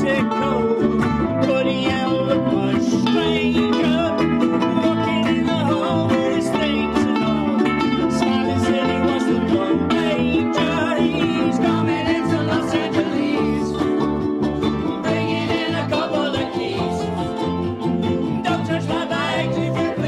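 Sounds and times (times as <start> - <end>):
fiddle: 0.0 - 20.0
ukuleles strumming: 0.0 - 20.0.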